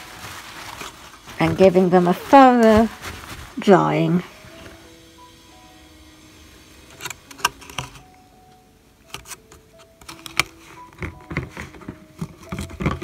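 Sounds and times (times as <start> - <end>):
faint background music: 0.0 - 13.0.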